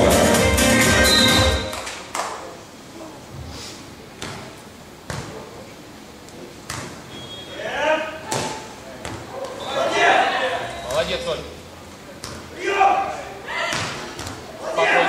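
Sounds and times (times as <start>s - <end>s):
volleyball hits: 4.2s - 5.4s, 6.6s - 7.4s, 8.2s - 9.7s, 12.2s - 14.5s
players shouting: 9.3s - 10.8s, 12.5s - 15.0s.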